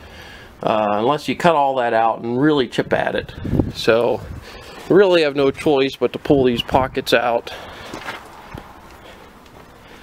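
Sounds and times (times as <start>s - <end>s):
background hiss: 0.0s - 10.0s
footsteps on gravel: 7.6s - 10.0s.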